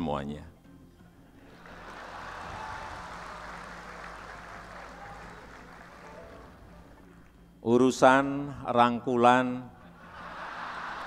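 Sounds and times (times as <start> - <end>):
audience applauding: 1.5 - 7.4, 10.0 - 11.0.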